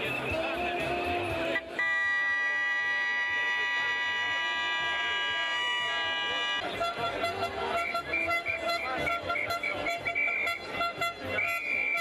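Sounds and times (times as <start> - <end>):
singing or music: 0.0 - 1.8
crowd: 0.0 - 12.0
long horn blast: 0.7 - 12.0.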